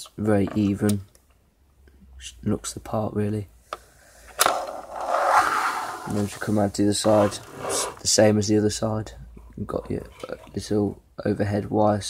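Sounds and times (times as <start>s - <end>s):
plastic rubbing scrape: 4.4s - 8.2s.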